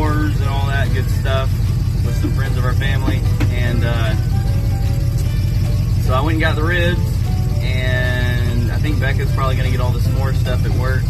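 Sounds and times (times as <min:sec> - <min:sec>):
soft background music: 0:00.0 - 0:11.0
vehicle engine rumbling: 0:00.0 - 0:11.0.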